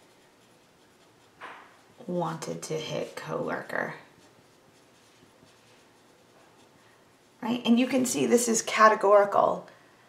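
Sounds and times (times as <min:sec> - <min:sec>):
pencil writing on paper: 0:00.0 - 0:07.4.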